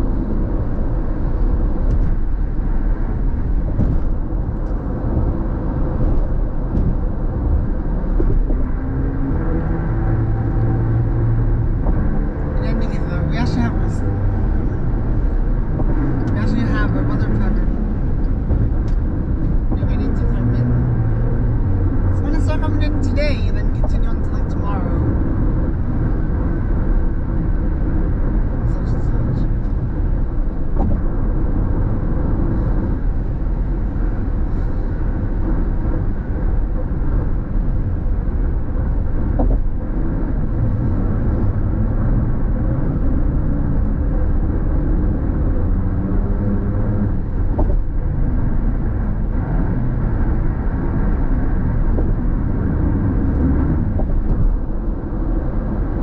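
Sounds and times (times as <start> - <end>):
car cabin road noise: 0.0 - 56.0.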